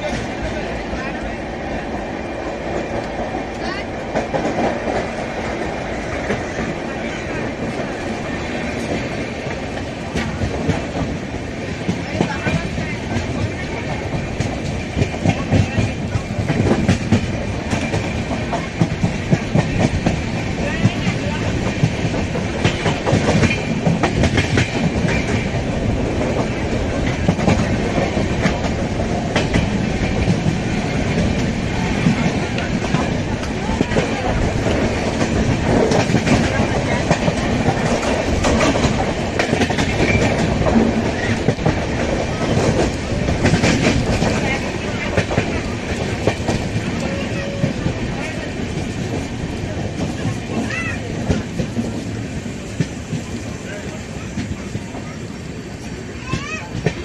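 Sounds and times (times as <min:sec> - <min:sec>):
train running noise: 0:00.0 - 0:57.0.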